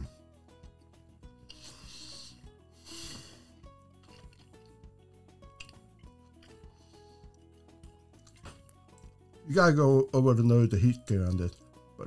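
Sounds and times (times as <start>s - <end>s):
faint background music: 0.0s - 12.0s
person exhaling breathy hisses: 1.5s - 3.7s.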